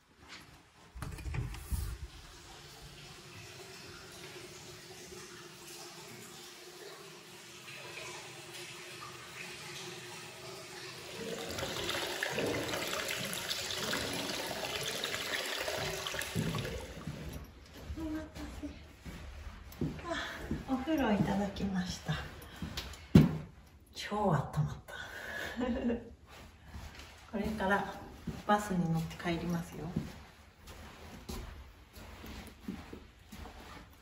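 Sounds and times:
water pouring into bath: 1.9s - 17.7s.

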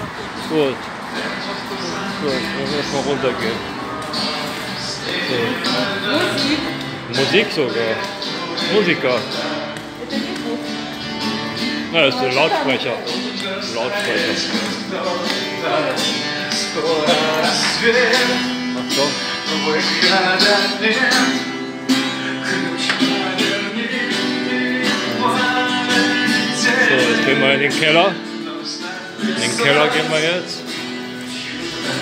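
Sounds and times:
music over a loudspeaker: 0.0s - 32.0s.

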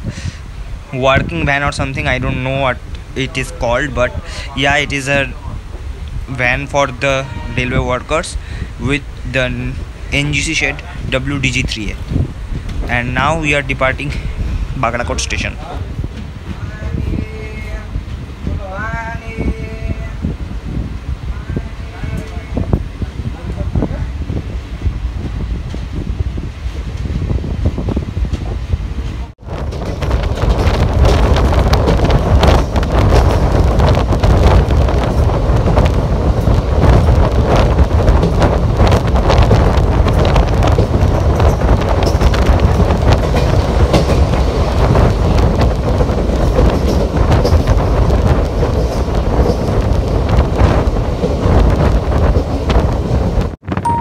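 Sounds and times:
train wheels rumbling on rails: 0.0s - 53.8s
wind on microphone: 0.0s - 54.0s.

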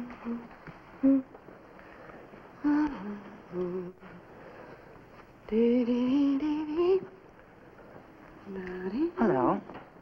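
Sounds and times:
woman humming: 0.0s - 1.3s, 2.6s - 4.2s.

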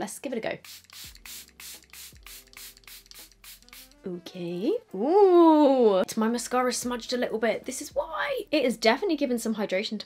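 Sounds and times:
background music: 0.0s - 10.0s
spray bottle hissing: 0.6s - 4.0s.

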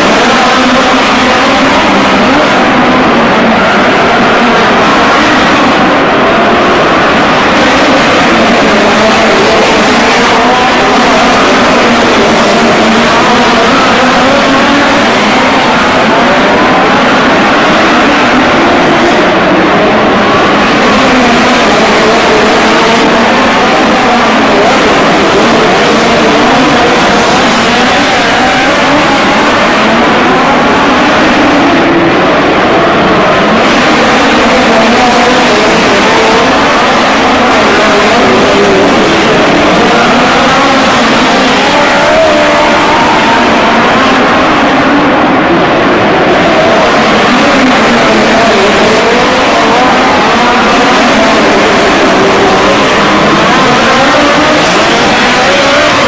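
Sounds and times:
race car engines running hard: 0.0s - 56.0s.

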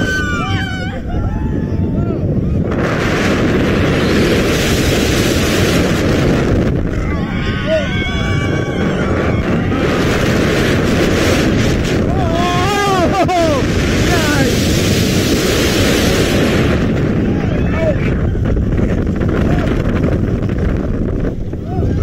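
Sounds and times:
riders screaming: 0.0s - 2.7s, 6.9s - 10.2s, 12.1s - 14.5s, 17.2s - 18.5s
roller coaster rumbling on track: 0.0s - 22.0s
wind rushing on microphone: 0.0s - 22.0s.

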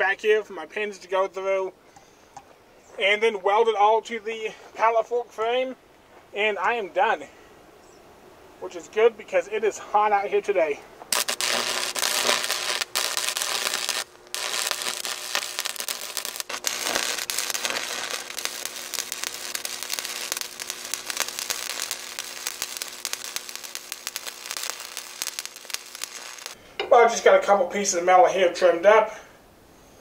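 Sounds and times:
faint steady hum: 0.6s - 30.0s
welding arc crackling: 11.1s - 26.6s.

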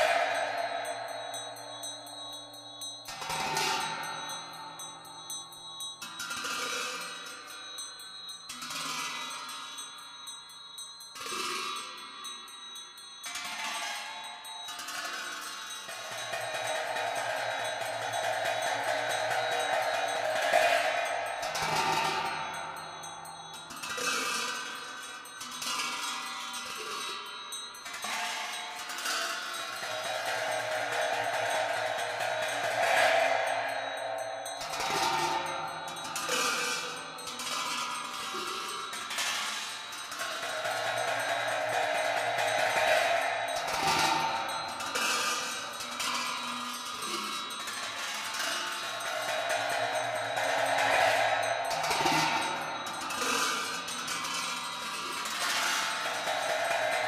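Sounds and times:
metal cymbals clashing: 0.0s - 57.0s
steady held tone: 0.0s - 57.0s.

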